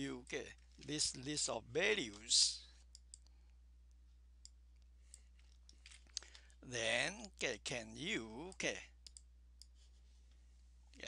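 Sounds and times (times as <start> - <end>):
low steady hum: 0.0 - 11.0
computer mouse clicks: 9.0 - 9.8.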